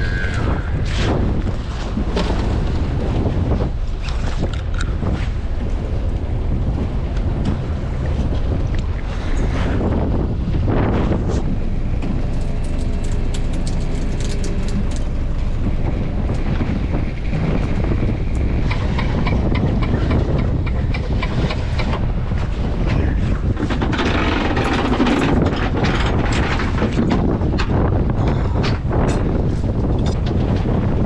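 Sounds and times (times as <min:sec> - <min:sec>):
boat engine rumble: 0:00.0 - 0:31.0
wind buffeting microphone: 0:00.0 - 0:31.0
fishing gear clicks and rattles: 0:12.0 - 0:15.6.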